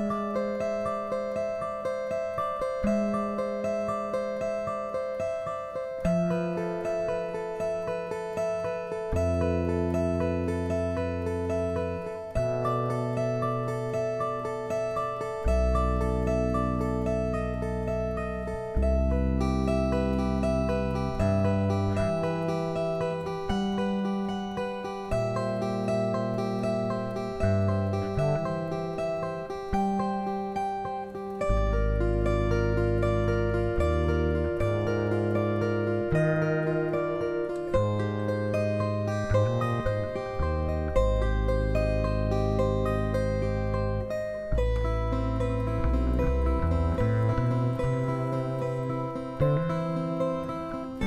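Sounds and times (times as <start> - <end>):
acoustic guitar trio music: 0.0 - 51.0
long held low notes: 0.0 - 51.0.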